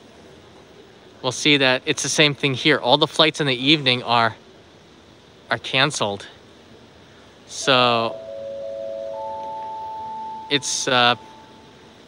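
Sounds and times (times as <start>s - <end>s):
public-address chime: 7.5s - 12.0s.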